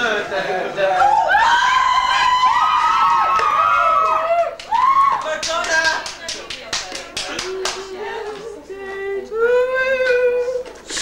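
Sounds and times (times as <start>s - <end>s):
sharp claps: 3.1s - 7.9s.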